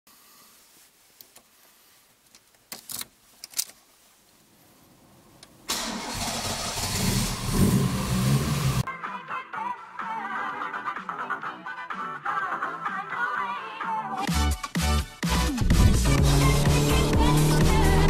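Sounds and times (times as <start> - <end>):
car engine cranking and running: 5.7 - 8.8, 15.7 - 18.0.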